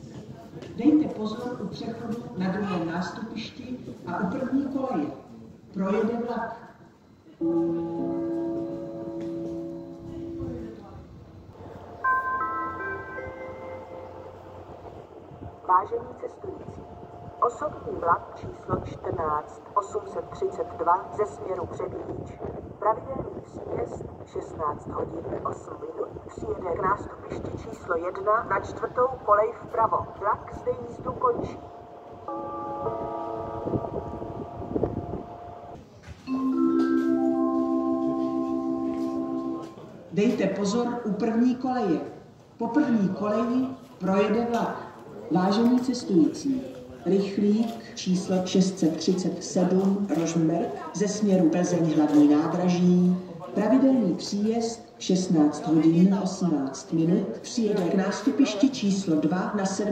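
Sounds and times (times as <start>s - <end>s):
low chime of held notes: 7.4s - 10.7s, 32.3s - 35.7s
train horn chord: 7.4s - 15.5s, 31.6s - 35.8s, 37.0s - 39.9s
wind gusts on microphone: 16.6s - 19.5s, 21.4s - 35.8s.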